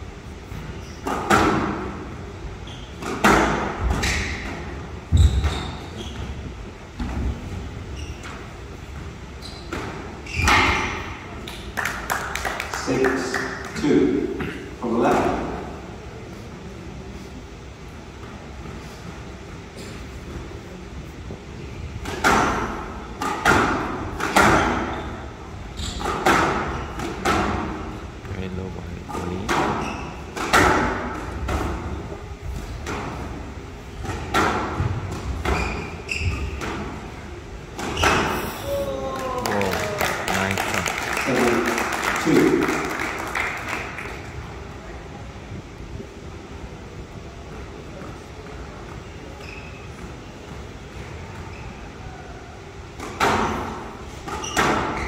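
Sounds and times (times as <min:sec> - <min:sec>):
squash ball hits: 0:01.0 - 0:01.9, 0:03.0 - 0:05.6, 0:22.0 - 0:24.9, 0:26.0 - 0:27.8, 0:29.2 - 0:32.0, 0:34.0 - 0:37.0
applause: 0:11.7 - 0:13.8, 0:39.2 - 0:44.3.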